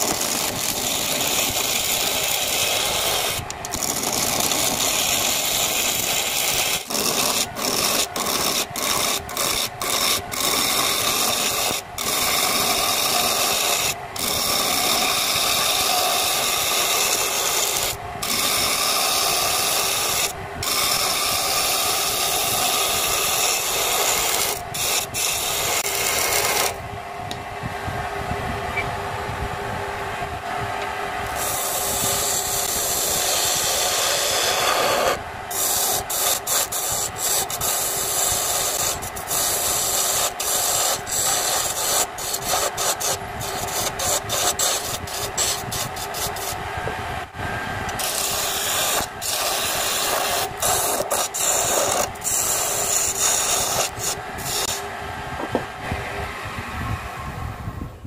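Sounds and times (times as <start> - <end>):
chisel scraping wood on lathe: 0.0 - 26.8, 31.3 - 46.6, 47.9 - 54.8.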